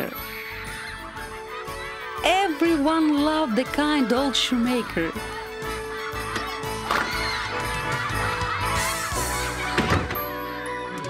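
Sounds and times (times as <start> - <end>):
children squealing and shouting: 0.0 - 2.6, 4.7 - 11.0
background music: 0.0 - 11.0.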